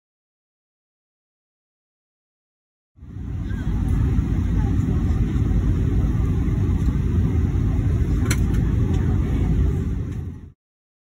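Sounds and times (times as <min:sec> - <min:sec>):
airliner cabin noise: 0:03.0 - 0:10.6.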